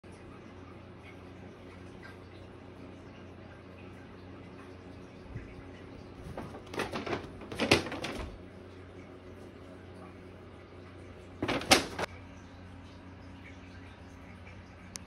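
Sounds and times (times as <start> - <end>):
faint room hum: 0.0 - 15.0
paper bag rustling and crinkling: 6.2 - 8.4, 11.4 - 12.1.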